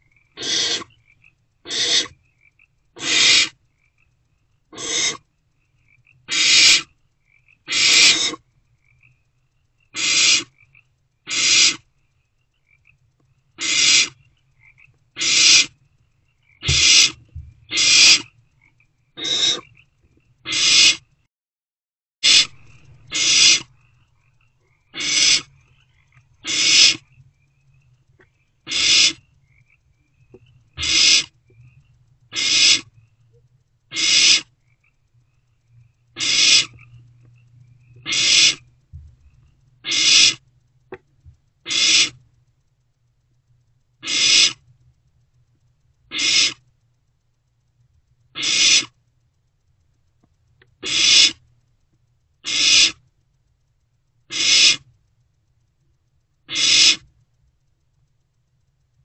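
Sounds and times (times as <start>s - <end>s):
faint low hum: 0.0s - 21.3s, 22.3s - 59.0s
owlets hissing begging calls: 0.3s - 1.0s, 1.7s - 2.2s, 3.0s - 3.6s, 4.7s - 5.2s, 6.3s - 6.9s, 7.7s - 8.4s, 9.9s - 10.6s, 11.3s - 11.8s, 13.6s - 14.2s, 15.2s - 15.8s, 16.6s - 18.3s, 19.2s - 19.8s, 20.5s - 21.0s, 22.2s - 24.0s, 24.9s - 27.1s, 28.7s - 29.3s, 30.7s - 31.4s, 32.3s - 32.9s, 33.9s - 34.5s, 36.2s - 36.8s, 38.0s - 38.6s, 39.8s - 40.4s, 41.7s - 42.2s, 44.0s - 44.6s, 46.1s - 46.6s, 48.4s - 48.9s, 50.8s - 51.4s, 52.4s - 53.0s, 54.3s - 54.8s, 56.5s - 57.1s.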